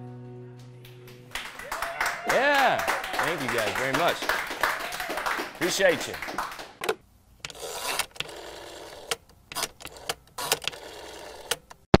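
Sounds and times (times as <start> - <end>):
sharp mechanical clicks: 6.8 - 11.8.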